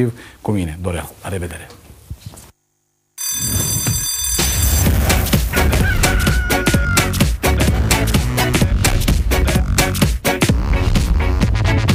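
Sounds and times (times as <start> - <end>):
bell-like ringing: 3.2 - 5.8
electronic music with steady beat: 4.3 - 11.9.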